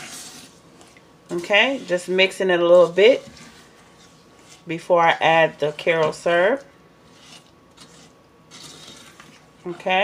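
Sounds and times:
spoon scraping pot: 5.6s - 10.0s.

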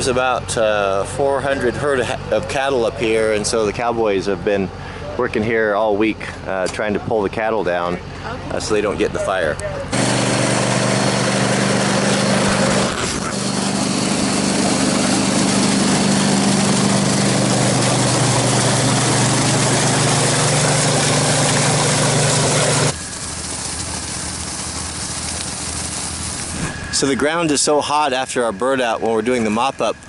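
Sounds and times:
truck engine and pump running: 0.0s - 30.0s
water gushing into tank: 9.9s - 27.8s
steady hiss: 22.6s - 30.0s.

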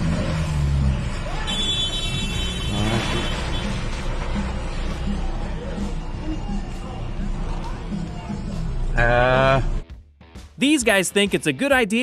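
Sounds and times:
car engine revving: 0.0s - 5.9s
street traffic noise: 0.0s - 9.8s
voices: 4.7s - 9.7s.

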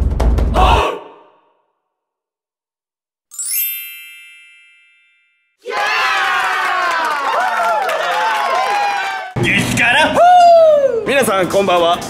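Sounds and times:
crowd shouting and cheering: 0.6s - 1.2s, 5.6s - 11.1s
bright sparkling chime: 3.3s - 5.6s.

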